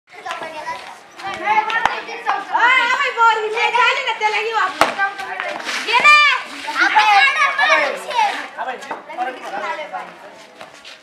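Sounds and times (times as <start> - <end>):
children shouting: 5.9 - 8.4.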